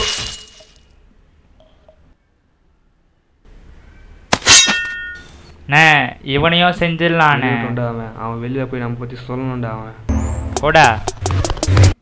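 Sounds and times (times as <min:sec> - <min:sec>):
metallic knife blade clang: 0:04.4 - 0:05.3.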